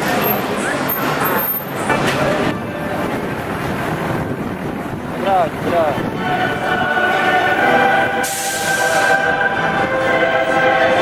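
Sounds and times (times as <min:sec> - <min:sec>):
bus engine running: 0:00.0 - 0:11.0
city street traffic: 0:00.0 - 0:11.0.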